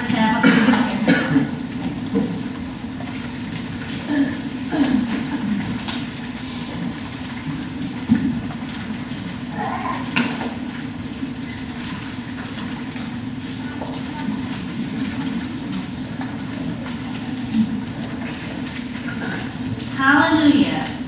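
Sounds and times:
low rumbling room hum: 0:00.0 - 0:21.0.

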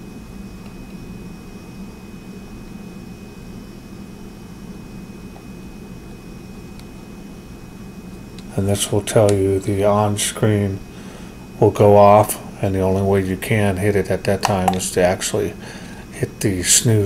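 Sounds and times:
high whine: 0:00.0 - 0:17.0
low hum: 0:00.0 - 0:17.0.

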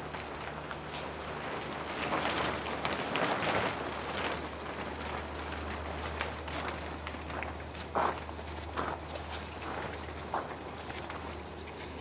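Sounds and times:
footsteps: 0:06.0 - 0:12.0.

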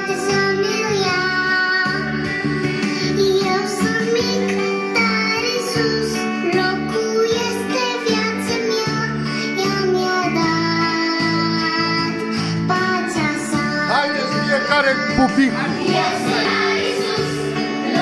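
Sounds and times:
child singing: 0:00.0 - 0:18.0.

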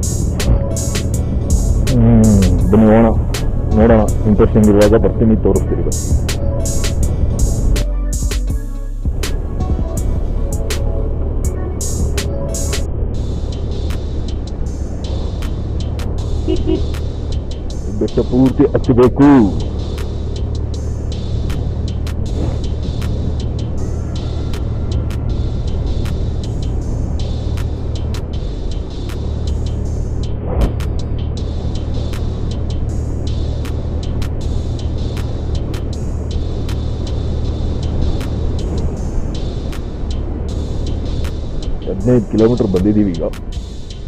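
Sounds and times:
road and wind noise: 0:00.0 - 0:08.3, 0:09.0 - 0:44.0
scooter engine humming: 0:00.0 - 0:08.3, 0:09.1 - 0:44.0.

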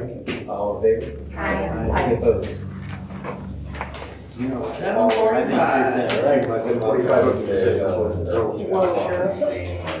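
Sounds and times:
low voices: 0:00.0 - 0:10.0.

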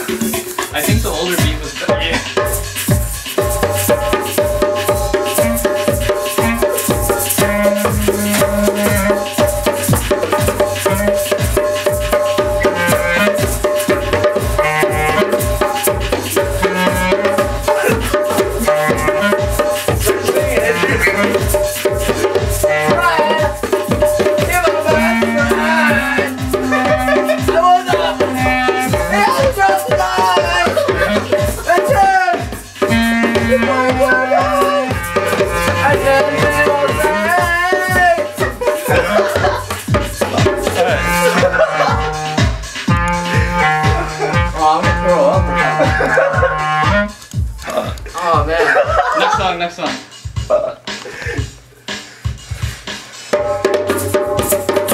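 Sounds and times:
held instrument notes: 0:00.0 - 0:48.3
djembe played by hand: 0:00.0 - 0:49.4, 0:53.3 - 0:54.9
looping backing beat with bass: 0:00.0 - 0:54.9
sustained melody line: 0:02.6 - 0:31.8, 0:32.5 - 0:47.6.

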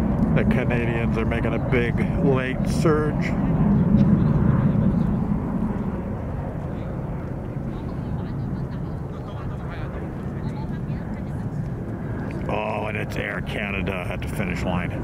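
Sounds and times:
distant jet engines rumbling: 0:00.0 - 0:15.0.

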